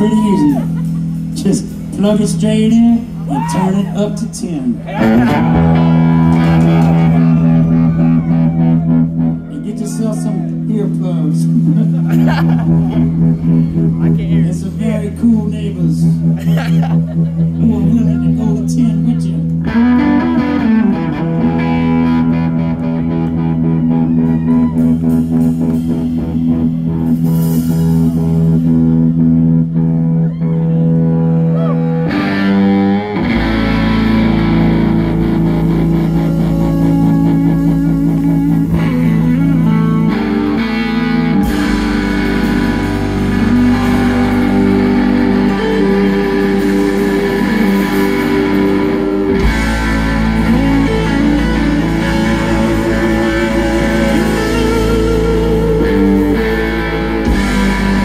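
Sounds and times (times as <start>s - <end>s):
drums: 0.0s - 58.0s
heavy bass: 0.0s - 58.0s
loud electric guitar: 0.0s - 58.0s.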